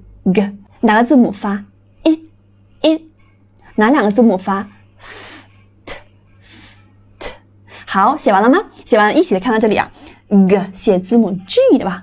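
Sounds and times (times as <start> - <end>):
woman pronouncing consonant sounds: 0.0 - 4.8, 5.6 - 6.4, 7.1 - 12.0.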